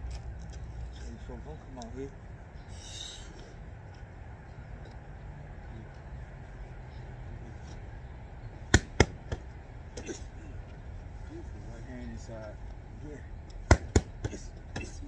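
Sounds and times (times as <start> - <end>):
boxing gloves smacking focus mitts: 8.7 - 10.1, 13.6 - 15.0.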